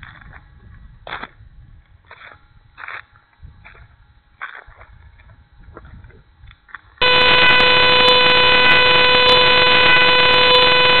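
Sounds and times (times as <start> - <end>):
steady electronic buzz: 7.0 - 11.0.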